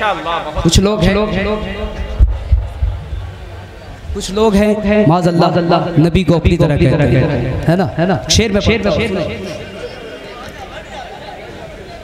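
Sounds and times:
man's amplified voice: 0.0 - 2.4, 4.1 - 9.9
dull low thumps: 1.5 - 4.4.

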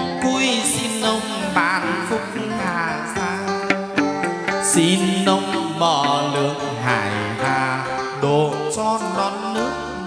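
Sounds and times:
ensemble playing wavering melody: 2.0 - 7.4.

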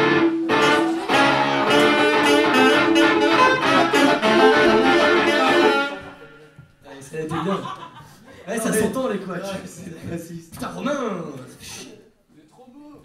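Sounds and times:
acoustic guitar: 0.0 - 6.5
saxophone: 0.0 - 6.6
small live band playing: 0.0 - 6.6.

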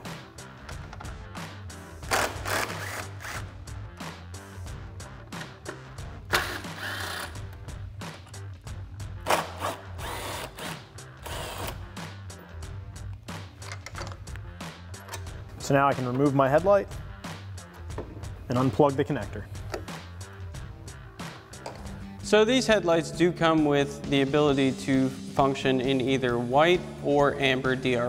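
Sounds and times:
background music: 0.0 - 28.0
impact driver bursts: 2.1 - 3.5, 9.3 - 11.8.

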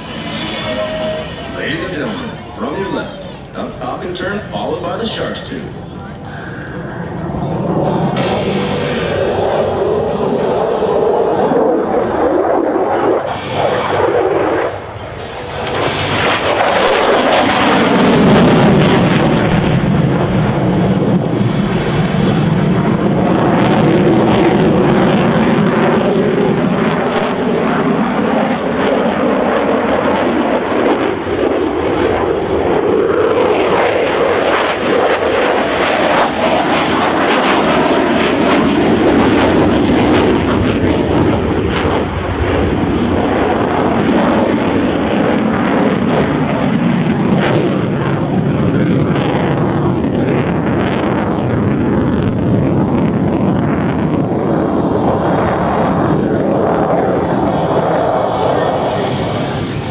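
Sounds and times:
fighter jet roaring: 0.0 - 59.9.

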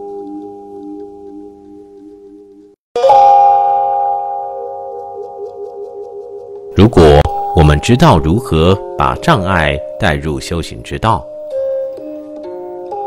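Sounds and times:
singing bowl ringing: 3.0 - 12.0.

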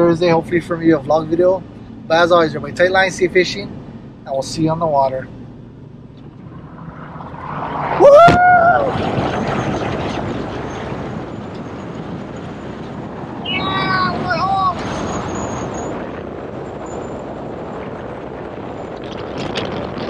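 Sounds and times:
road and tyre noise: 0.0 - 20.0
wind rushing over camera: 5.3 - 20.0
man whooping shout: 8.0 - 9.0.

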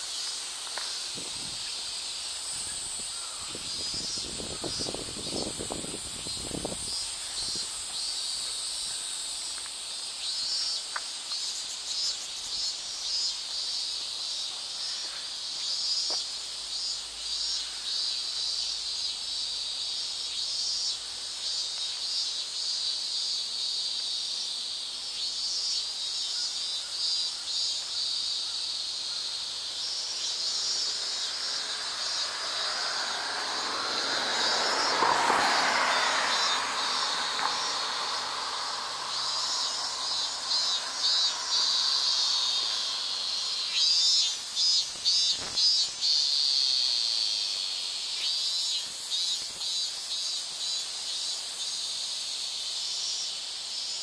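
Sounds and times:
cicadas buzzing: 0.0 - 54.0
car passing: 29.9 - 44.3.

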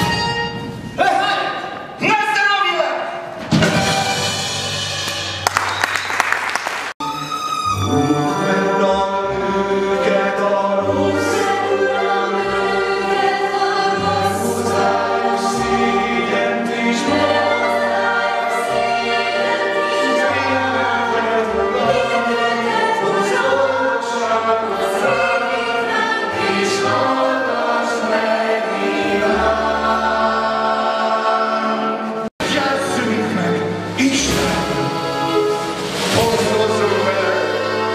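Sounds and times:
instrumental accompaniment: 3.3 - 5.7, 7.0 - 37.9
cast singing in harmony: 7.8 - 32.3.

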